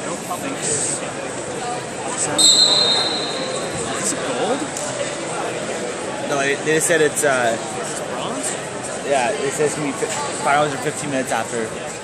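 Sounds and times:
crowd chatter in a hall: 0:00.0 - 0:12.0
referee's whistle blast: 0:02.4 - 0:03.8.

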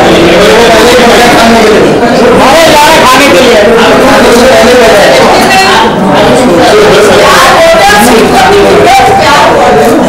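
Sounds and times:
chatter of several voices: 0:00.0 - 0:10.0.

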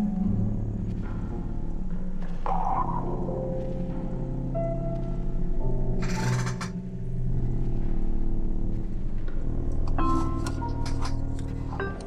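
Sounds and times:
low electronic drone: 0:00.0 - 0:12.0.

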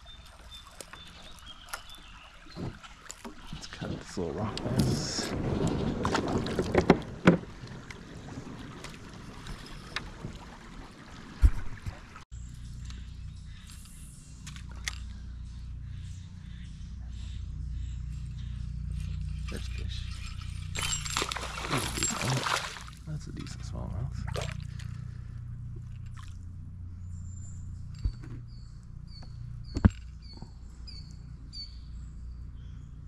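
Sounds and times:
steady low rumble: 0:12.3 - 0:33.0.

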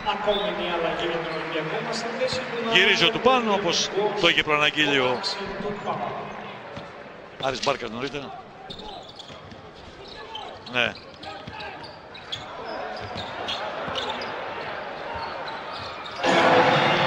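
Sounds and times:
crowd cheering loudly: 0:00.1 - 0:06.6, 0:12.5 - 0:17.0
crowd murmur: 0:12.8 - 0:17.0.

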